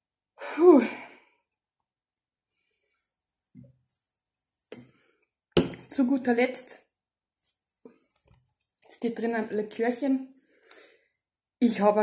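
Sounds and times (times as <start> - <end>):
glass knocking on table: 5.6 - 5.8.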